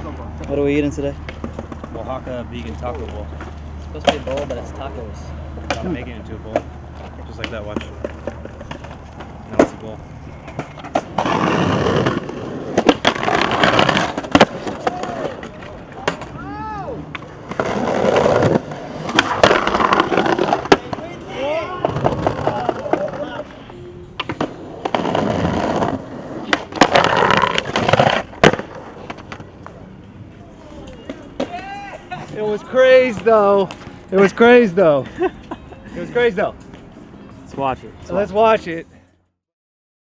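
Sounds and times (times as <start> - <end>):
skateboard wheels rolling on concrete: 0.0 - 39.1
skateboard clacks: 1.2 - 4.9, 5.5 - 29.8.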